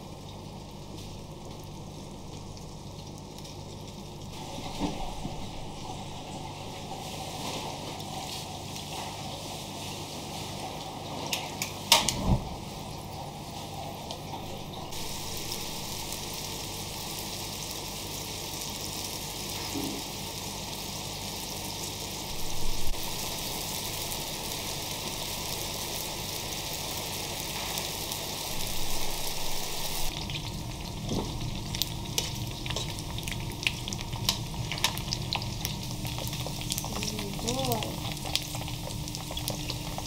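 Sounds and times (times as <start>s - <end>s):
beef fat sizzling in iron pan: 0.0s - 40.0s
fat crackling and popping: 30.0s - 40.0s.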